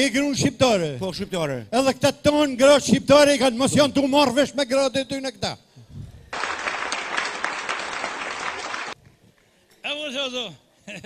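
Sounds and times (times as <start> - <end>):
audience applauding: 6.3 - 9.0.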